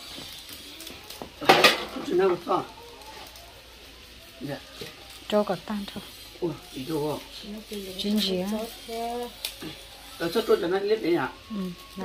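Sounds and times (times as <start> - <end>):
metal cookware clattering: 1.4 - 2.4.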